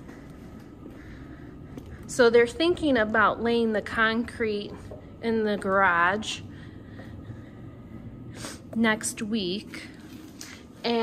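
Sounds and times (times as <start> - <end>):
footsteps on planks: 1.7 - 7.5.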